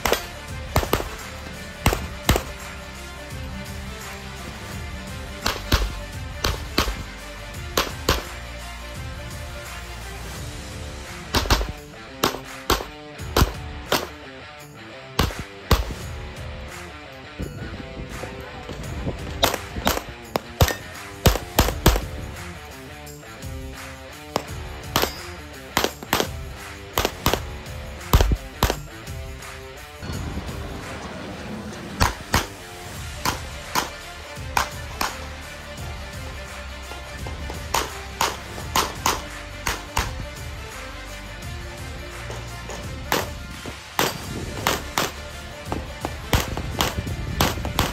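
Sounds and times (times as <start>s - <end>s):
pistol shots: 0.0s - 2.7s, 5.3s - 8.4s, 11.2s - 14.2s, 15.2s - 16.1s, 19.4s - 22.2s, 24.3s - 28.9s, 32.0s - 32.6s, 33.2s - 35.4s, 37.6s - 40.2s, 42.4s - 43.4s, 44.0s - 47.9s
background music: 0.0s - 47.9s.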